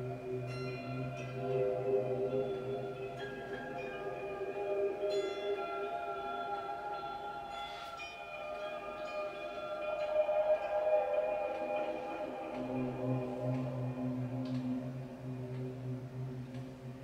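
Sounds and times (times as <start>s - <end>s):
ambient electric guitar notes: 0.0s - 17.0s.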